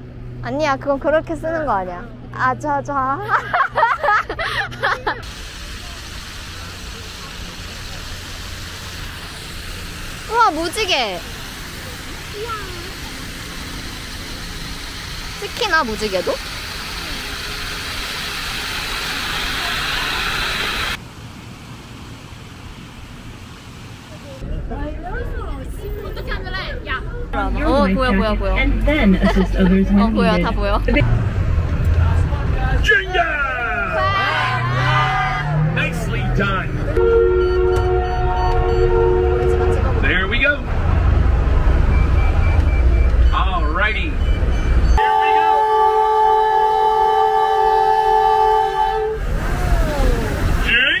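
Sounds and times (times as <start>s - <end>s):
boat engine rumbling: 0.0s - 51.0s
fountain water splashing: 5.2s - 21.0s, 49.2s - 51.0s
passengers calling excitedly: 9.9s - 13.8s, 24.4s - 31.0s, 32.2s - 40.7s
rushing water: 49.2s - 51.0s.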